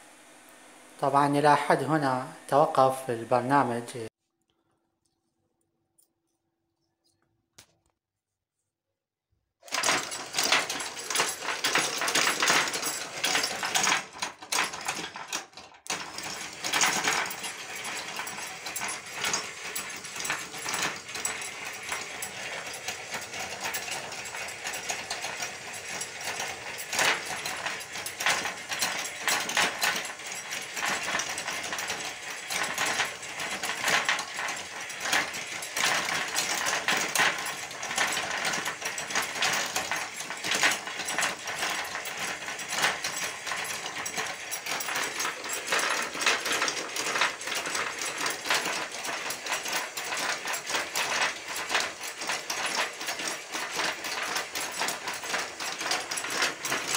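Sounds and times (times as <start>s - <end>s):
ratcheting clicks and clatter: 9.6s - 56.9s.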